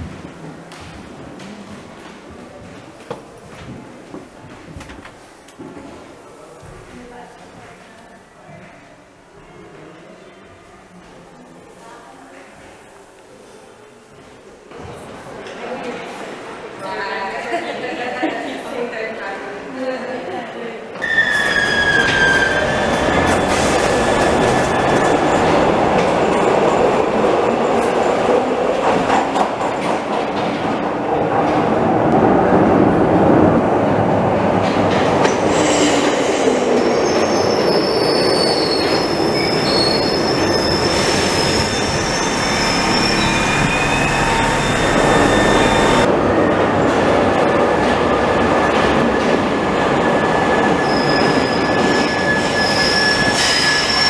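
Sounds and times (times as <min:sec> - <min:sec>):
high wheel squeal: 0:21.0 - 0:25.1, 0:37.0 - 0:46.1, 0:50.0 - 0:54.0
train wheels rumbling on track: 0:21.0 - 0:54.0.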